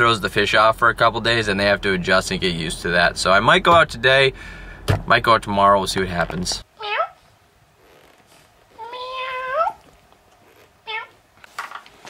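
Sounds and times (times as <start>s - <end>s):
cat meowing: 8.8s - 9.8s, 10.9s - 11.2s.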